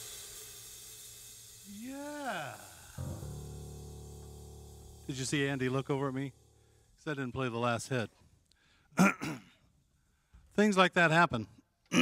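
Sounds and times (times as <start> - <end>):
cymbal ringing: 0.0 - 7.1
jazz trio final chord: 2.9 - 6.8
low instrument note ringing: 2.9 - 6.8.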